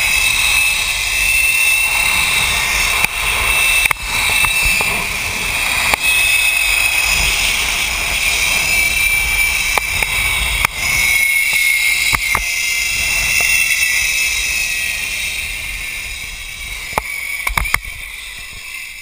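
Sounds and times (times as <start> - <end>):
wind on microphone: 0.0 - 19.0
zipline pulleys whining on cable: 0.0 - 19.0
sharp clicks: 11.4 - 12.5.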